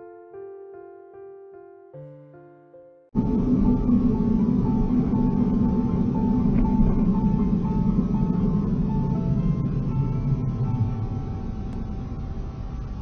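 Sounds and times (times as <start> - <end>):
simple background melody: 0.0 - 13.0
low rumble of vehicle driving: 3.2 - 13.0.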